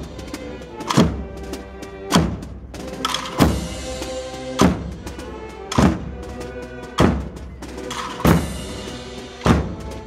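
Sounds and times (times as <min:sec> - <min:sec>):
brass chords: 0:00.0 - 0:10.0.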